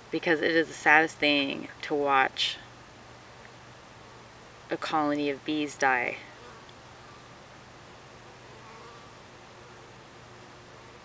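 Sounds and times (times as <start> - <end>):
steady low hiss: 0.0 - 11.0
faint honeybee buzzing: 3.2 - 11.0.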